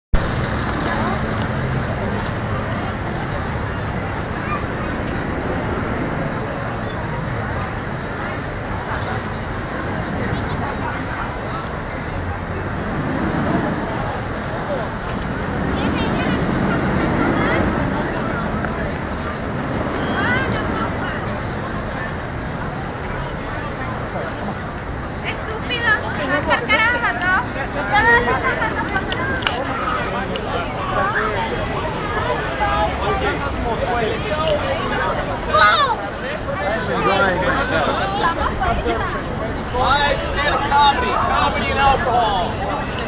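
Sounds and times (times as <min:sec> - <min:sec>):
crowd voices: 0:00.1 - 0:43.0
traffic hum: 0:00.1 - 0:43.0.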